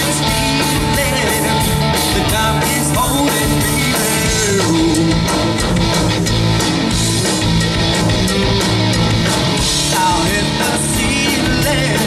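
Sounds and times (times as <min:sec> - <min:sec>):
bass notes: 0:00.0 - 0:12.0
steady drum beat: 0:00.0 - 0:12.0
strummed electric guitar: 0:00.0 - 0:12.0.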